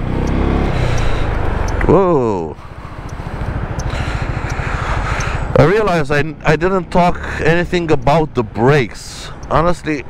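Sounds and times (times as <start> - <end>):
scooter engine running: 0.0 - 7.4.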